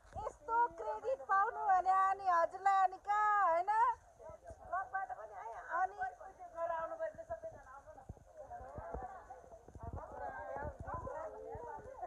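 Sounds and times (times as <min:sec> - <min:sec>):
women chatting: 0:00.1 - 0:12.0.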